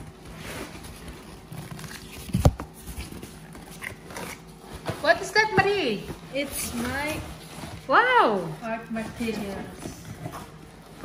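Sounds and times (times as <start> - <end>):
cardboard scraping and rustling: 0.0 - 11.0.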